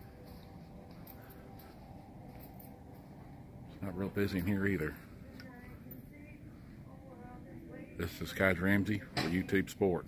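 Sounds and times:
faint steady tones: 0:00.0 - 0:10.0
man speaking: 0:03.8 - 0:05.1, 0:08.0 - 0:10.0.

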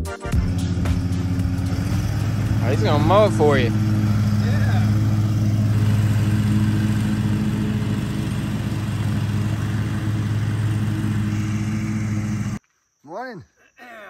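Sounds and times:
lawn mower engine running: 0:00.3 - 0:12.6.

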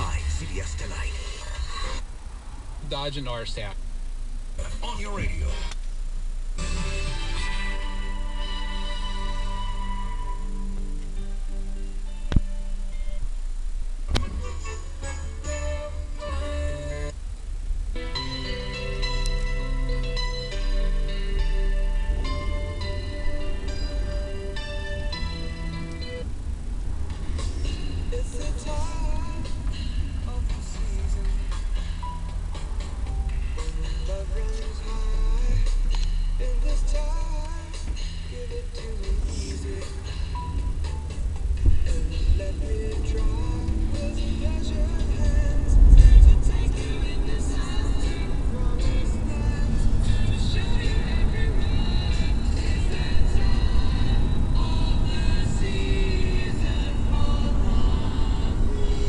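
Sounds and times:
car engine and tyres rumbling: 0:00.0 - 0:59.0
radio music: 0:00.0 - 0:59.0.

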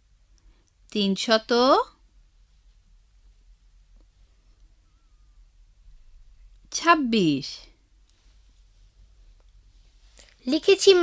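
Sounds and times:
faint clicks: 0:00.3 - 0:00.8
low hum: 0:02.0 - 0:06.7.

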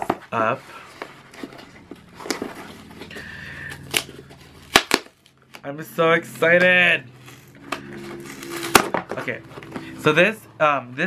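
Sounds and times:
cardboard box rustling: 0:00.0 - 0:03.3
cardboard cracking: 0:03.8 - 0:05.6.

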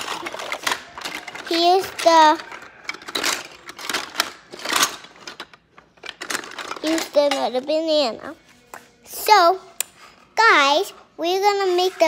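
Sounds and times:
plastic toy dishes clacking: 0:00.0 - 0:07.7.

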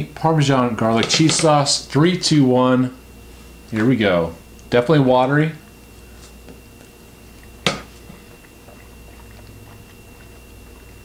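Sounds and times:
person chewing pasta: 0:05.6 - 0:11.0.

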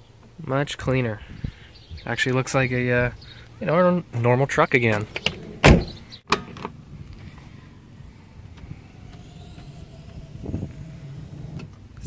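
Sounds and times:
faint outdoor background: 0:00.0 - 0:12.0
car door slamming shut: 0:05.5 - 0:06.4.

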